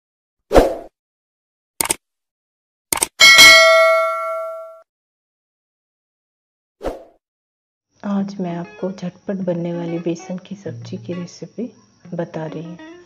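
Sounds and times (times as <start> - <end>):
quick clicks: 1.8 - 2.0, 2.9 - 3.2
bright bell ding: 3.2 - 4.8.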